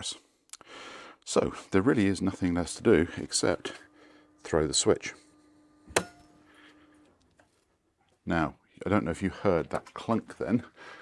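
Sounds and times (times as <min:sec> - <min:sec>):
faint electrical hum: 0:00.0 - 0:11.0
changeover clunk: 0:05.8 - 0:06.4
switch snapping off: 0:05.8 - 0:06.4.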